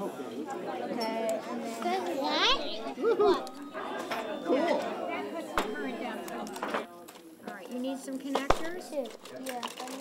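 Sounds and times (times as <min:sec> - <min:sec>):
bursts of talk: 0:00.0 - 0:10.0
indistinct chatter of voices: 0:00.0 - 0:10.0.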